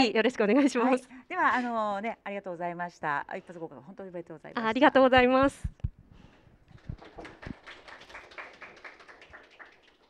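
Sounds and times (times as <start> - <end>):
light applause: 6.7 - 10.0.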